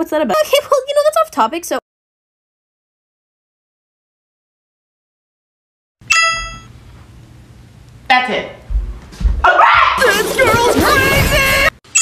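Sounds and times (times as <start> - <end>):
notification chime ding: 6.1 - 6.7
faint room hum: 6.2 - 11.7.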